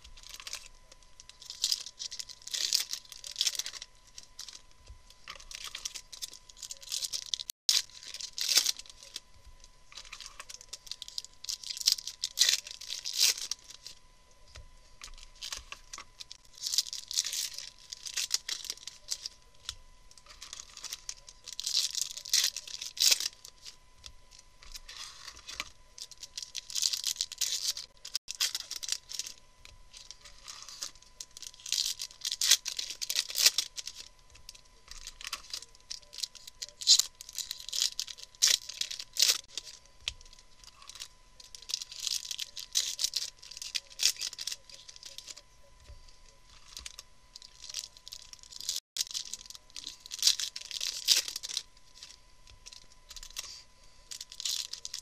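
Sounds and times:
foil wrappers tearing and crinkling: 0.0s - 4.6s, 5.2s - 9.2s, 9.9s - 14.0s, 15.0s - 23.8s, 24.6s - 45.4s, 46.5s - 55.0s.

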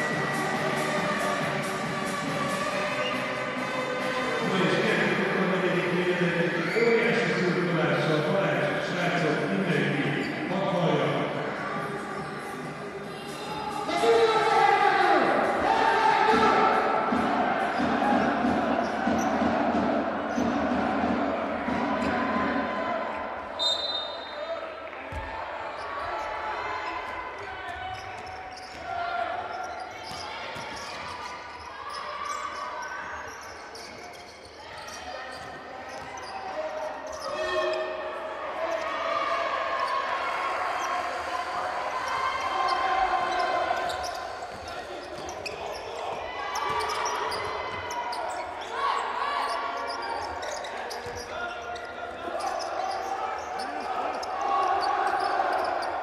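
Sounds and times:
voices: 0.0s - 56.0s.

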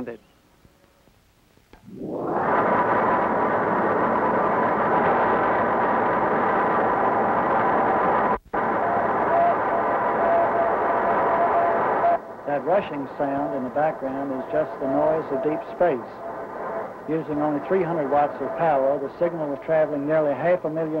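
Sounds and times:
radio static hiss: 0.9s - 21.0s.

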